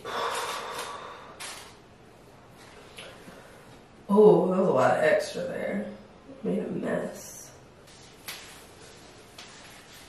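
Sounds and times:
short sharp breath: 0.0 - 1.6
woman exhaling forcefully: 0.0 - 1.6.

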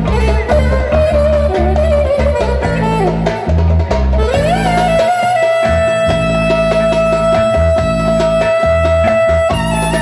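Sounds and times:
amplified clarinet melody: 0.0 - 10.0
low bass accompaniment: 0.0 - 10.0.

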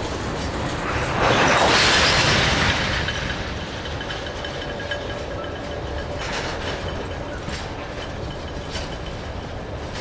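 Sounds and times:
loud rushing noise: 0.0 - 4.0
train wheels rumbling on rail: 0.0 - 10.0.

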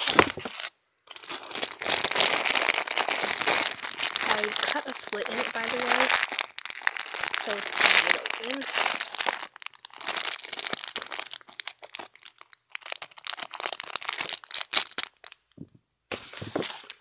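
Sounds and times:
scissors cutting plastic: 0.0 - 2.1
plastic packaging crinkling: 0.0 - 15.6.

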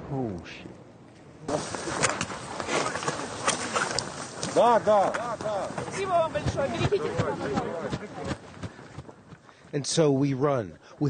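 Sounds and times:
hurried footfalls: 4.1 - 9.8.

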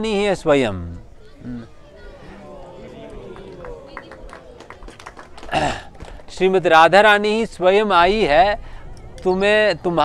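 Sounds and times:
people talking in background: 0.0 - 10.0.

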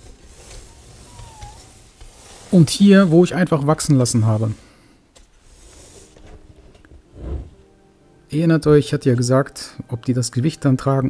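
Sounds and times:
plastic box scraping on wood: 0.0 - 3.3.

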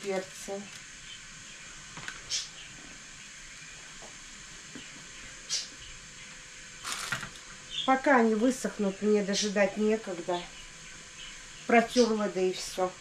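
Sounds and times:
steady low hiss: 0.0 - 13.0.

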